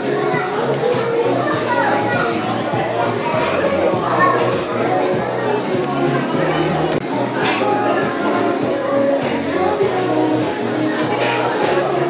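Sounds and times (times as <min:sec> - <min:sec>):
background music: 0:00.0 - 0:12.0
children's voices: 0:00.0 - 0:12.0
people talking: 0:00.0 - 0:12.0.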